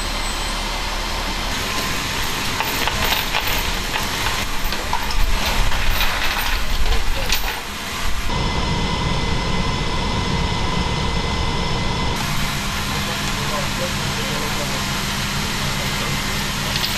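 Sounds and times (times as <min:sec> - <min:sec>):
aircraft engine drone: 0:00.0 - 0:16.9
high whine: 0:00.0 - 0:16.9.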